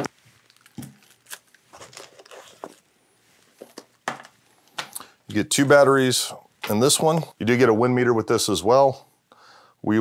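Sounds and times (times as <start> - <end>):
cardboard packaging rustling: 0.0 - 4.3.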